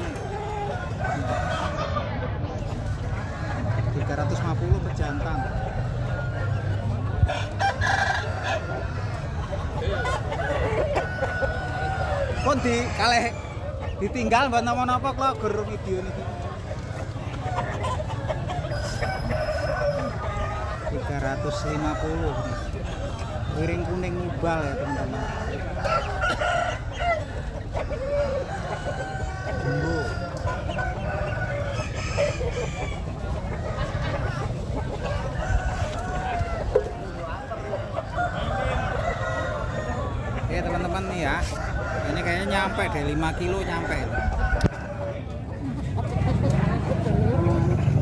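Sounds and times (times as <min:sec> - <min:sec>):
crowd chatter: 0:00.0 - 0:48.0
roosters crowing: 0:00.0 - 0:48.0
rooster crowing: 0:28.2 - 0:30.3.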